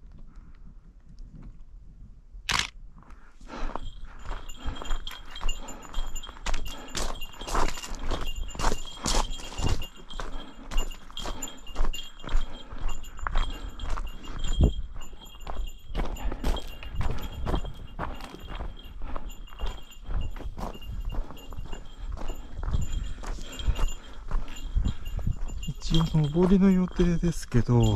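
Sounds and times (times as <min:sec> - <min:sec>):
small bell jingling: 0:03.5 - 0:27.9
footsteps on gravel: 0:03.8 - 0:27.9.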